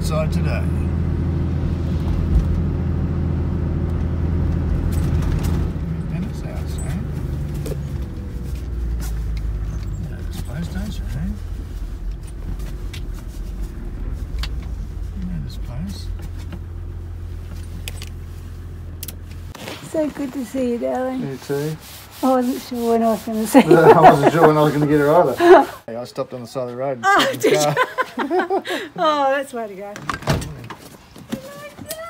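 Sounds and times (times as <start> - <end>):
engine drone inside vehicle: 0.0 - 21.1
road noise: 0.0 - 32.0.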